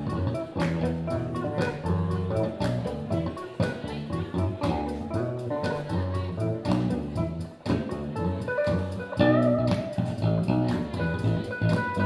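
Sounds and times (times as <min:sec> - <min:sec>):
bass guitar: 0:00.0 - 0:12.0
electric guitar: 0:00.0 - 0:12.0
steady beat: 0:00.0 - 0:12.0.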